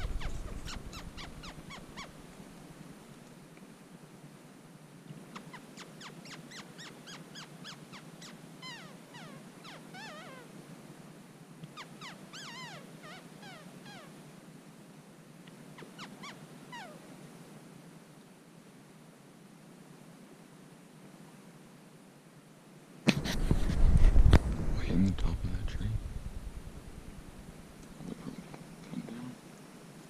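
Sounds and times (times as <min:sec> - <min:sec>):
squirrel alarm calls: 0:00.0 - 0:02.4, 0:05.3 - 0:10.5, 0:11.7 - 0:14.1, 0:15.7 - 0:17.0.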